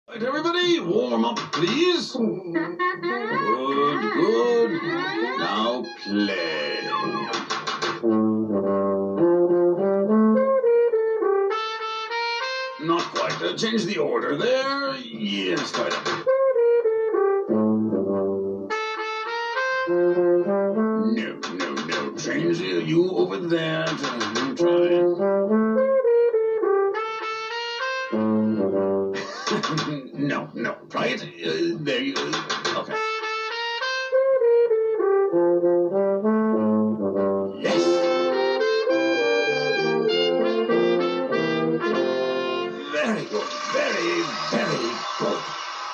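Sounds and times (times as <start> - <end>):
brass instruments playing notes: 3.0 - 13.4, 16.2 - 22.9, 24.0 - 29.2, 32.9 - 45.5.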